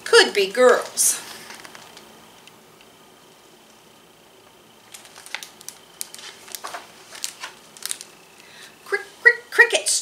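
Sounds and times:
book pages turning: 4.8 - 8.3.

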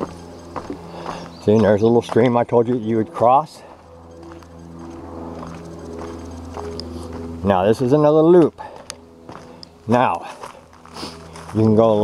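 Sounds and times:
footsteps on wooden planks: 0.0 - 7.4, 8.4 - 11.7
low hum: 0.0 - 12.0.

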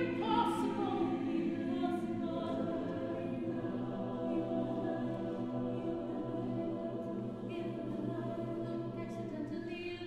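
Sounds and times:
choir singing a held chord: 0.0 - 10.0.

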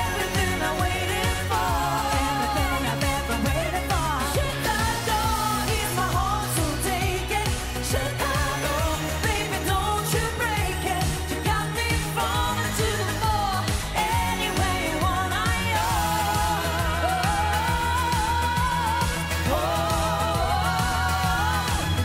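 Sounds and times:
electronic dance beat: 0.0 - 22.0
woman singing: 0.0 - 22.0.

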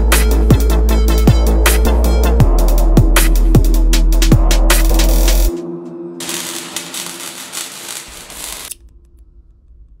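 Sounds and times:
dense crackling hiss: 6.2 - 8.8.

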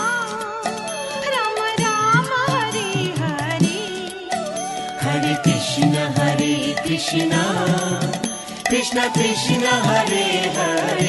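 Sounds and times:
chanted devotional melody: 0.0 - 11.0
percussion strikes keeping beat: 0.0 - 11.0
steady held tones: 0.0 - 11.0.

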